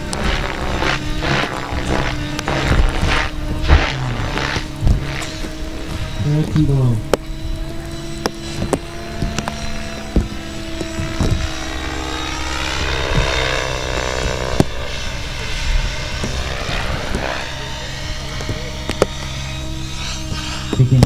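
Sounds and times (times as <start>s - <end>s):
sharp clicks: 0.0s - 11.6s
model helicopter rotor and motor: 0.0s - 21.0s.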